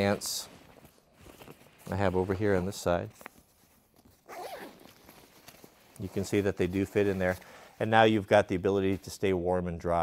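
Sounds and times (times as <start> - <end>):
zipper being pulled open: 4.2 - 6.3.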